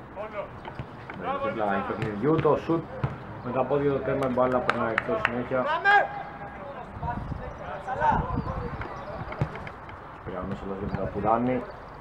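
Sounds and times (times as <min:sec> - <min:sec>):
ball being kicked: 0:01.9 - 0:03.3, 0:09.3 - 0:09.7.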